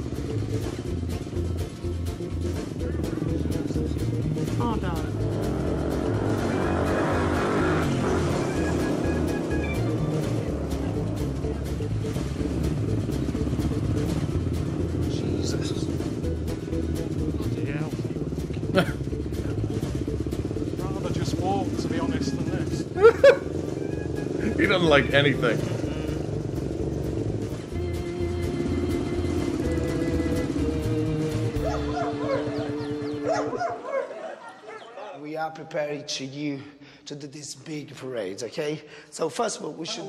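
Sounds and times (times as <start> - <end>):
music: 0.0 - 34.0
motorcycle engine running: 0.0 - 34.1
voice: 2.8 - 5.2, 15.0 - 16.0, 17.4 - 18.2, 18.8 - 19.9, 20.8 - 23.2, 24.4 - 26.2, 35.0 - 40.0
dog barking: 31.6 - 35.2.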